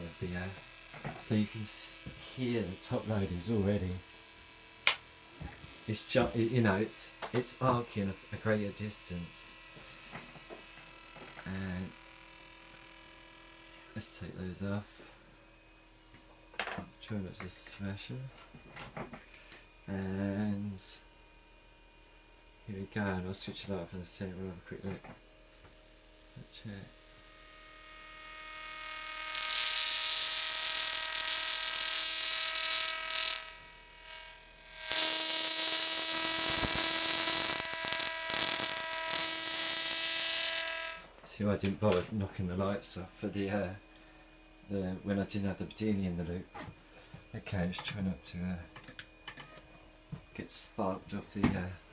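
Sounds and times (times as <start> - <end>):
tesla coil hissing buzz: 0.0 - 49.4
electrical whine and hum: 0.0 - 51.9.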